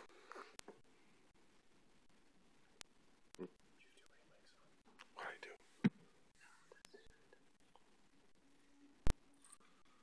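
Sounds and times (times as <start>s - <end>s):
person whispering: 3.4s - 5.7s, 6.4s - 7.9s.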